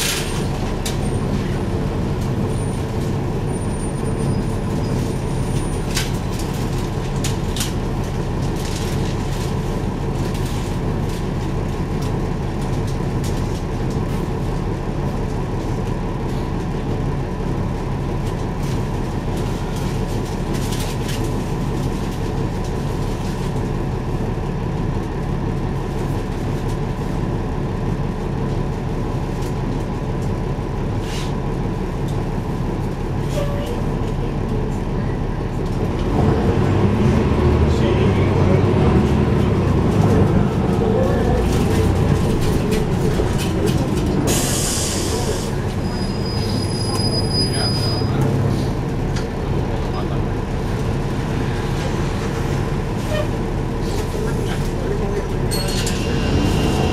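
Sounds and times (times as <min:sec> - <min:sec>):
bus engine rumbling: 0:00.0 - 0:56.9.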